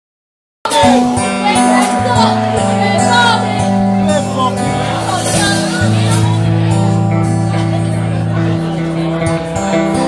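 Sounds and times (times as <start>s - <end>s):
band playing guitars and drums: 0.6s - 10.0s.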